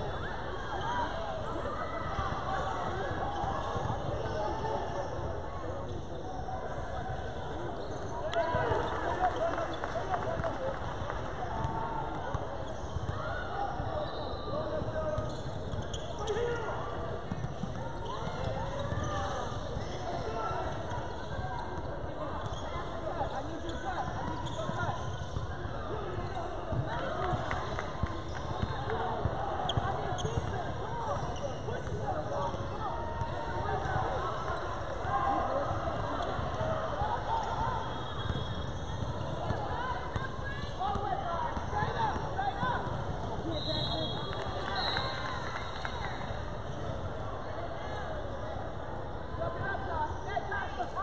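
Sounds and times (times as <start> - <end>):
chatter and calls in gym: 0.0 - 51.0.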